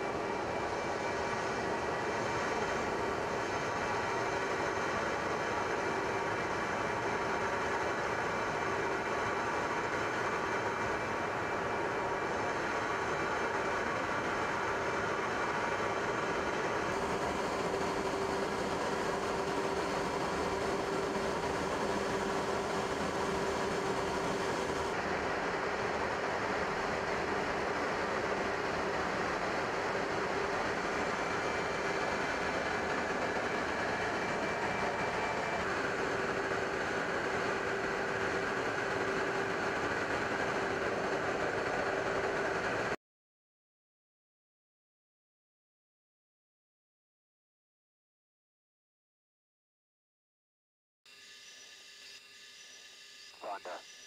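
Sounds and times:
aircraft engines droning: 0.0 - 43.0.

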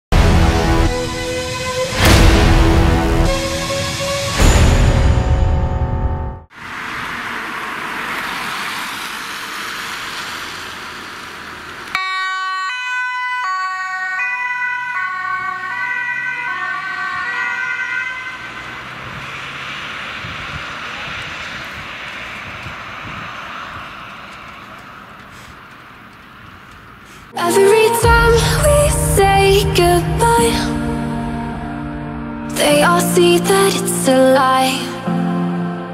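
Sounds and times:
rushing road traffic noise: 0.2 - 5.4, 6.5 - 12.3, 14.8 - 35.9
ambulance two-tone siren: 12.0 - 24.3.

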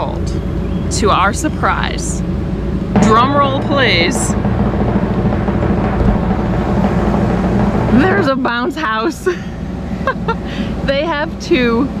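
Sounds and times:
drum roll: 2.9 - 10.5.

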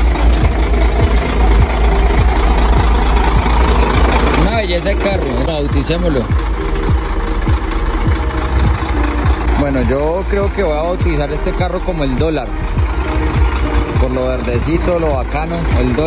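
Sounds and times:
truck engine idling: 0.0 - 16.0
voices: 0.0 - 16.0.

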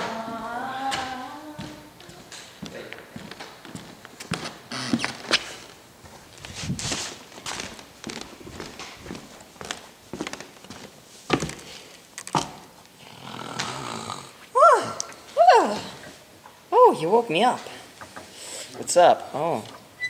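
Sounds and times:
footsteps on wooden floor: 0.0 - 11.7
scuffing: 1.6 - 11.8.

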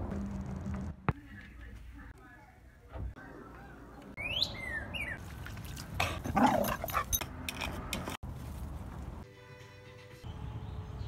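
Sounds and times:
rough dog noises: 5.7 - 7.2.

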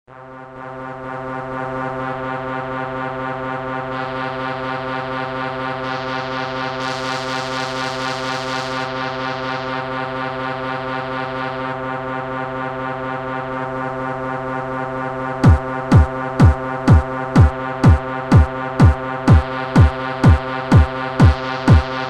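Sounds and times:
pulsing synthesizer drone: 0.1 - 22.0.

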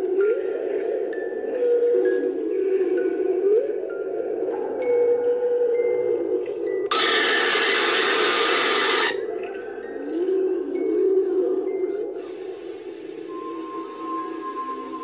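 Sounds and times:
loud harsh noise burst: 6.9 - 9.2
eerie low gliding tones: 9.9 - 15.0
faint hiss: 12.2 - 15.0
held high tone: 13.3 - 15.0.

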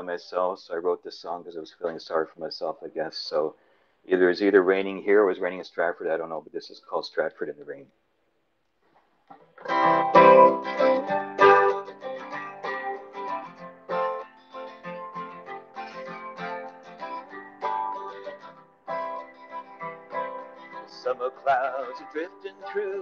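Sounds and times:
acoustic guitar playing slow song: 9.4 - 23.0.

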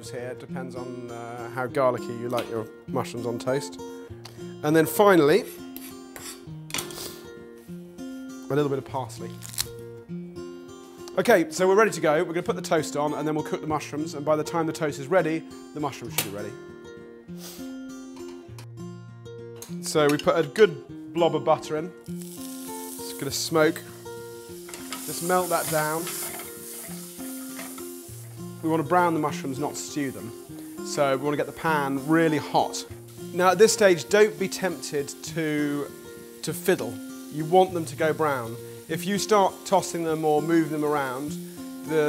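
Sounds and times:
background music of held notes: 0.0 - 42.0
music of held notes: 21.3 - 42.0
butter sizzling in a frying pan: 22.1 - 42.0
utensils clattering: 24.7 - 27.9.

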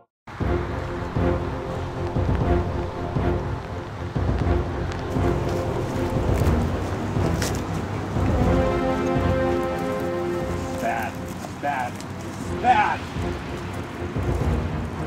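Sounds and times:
music with long held notes: 0.3 - 15.0
rushing rumbling noise: 0.3 - 15.0.

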